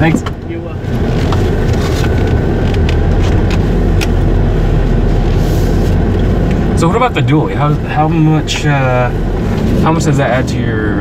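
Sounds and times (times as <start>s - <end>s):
diesel engine rumble inside cab: 0.0s - 11.0s.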